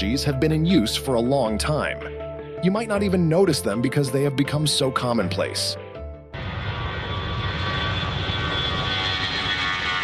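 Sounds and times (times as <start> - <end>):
jet engines roaring with whine: 6.4 - 10.0.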